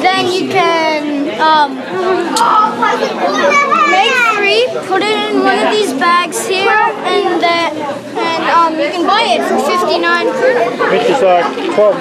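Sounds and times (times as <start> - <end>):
child talking: 0.0 - 11.7
chatter of children: 0.0 - 12.0.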